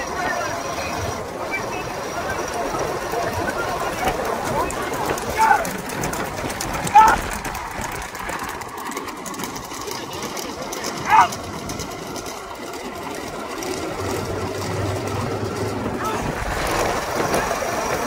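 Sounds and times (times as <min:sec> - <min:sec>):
carts rolling and bulls running: 0:00.0 - 0:18.0
low engine hum: 0:00.0 - 0:18.0
person shouting: 0:05.3 - 0:05.7, 0:06.9 - 0:07.2, 0:11.0 - 0:11.4.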